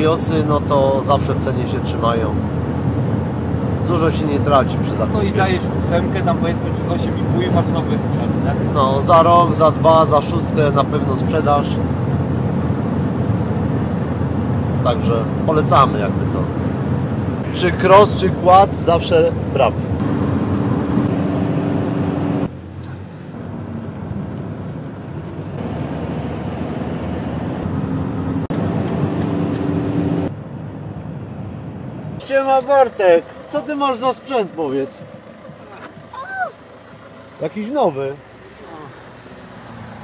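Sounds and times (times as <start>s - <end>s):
engine hum: 0.0s - 40.0s
road rumble: 0.0s - 40.0s
vehicle engine idling: 30.2s - 40.0s.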